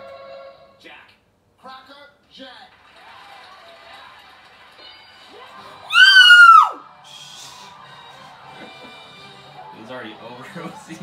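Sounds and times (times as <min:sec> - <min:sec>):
faint crowd: 0:02.9 - 0:11.0
person screaming: 0:05.9 - 0:06.8.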